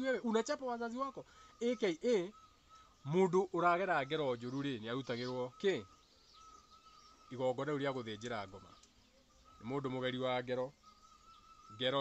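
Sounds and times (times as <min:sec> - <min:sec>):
man speaking: 0:00.0 - 0:02.3, 0:07.3 - 0:08.8, 0:09.6 - 0:10.7.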